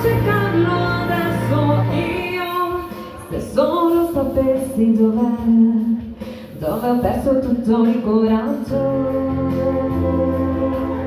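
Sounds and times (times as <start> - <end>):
woman singing into a microphone: 0.0 - 11.0.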